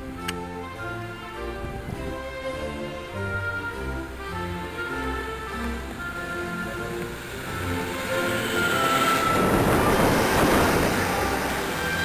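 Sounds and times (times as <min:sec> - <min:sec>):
background music: 0:00.0 - 0:12.0
diesel train passing: 0:00.0 - 0:12.0.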